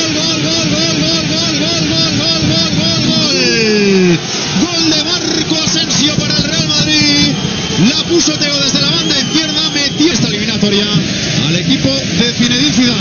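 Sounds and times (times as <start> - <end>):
stadium crowd noise: 0.0 - 13.0
man's drawn-out wavering shout: 1.8 - 4.3
crowd shouting short calls: 3.1 - 10.1.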